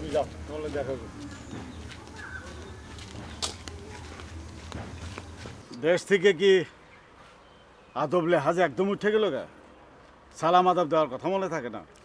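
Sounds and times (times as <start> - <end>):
man speaking: 0.0 - 1.2
footsteps on dirt path: 0.0 - 5.7.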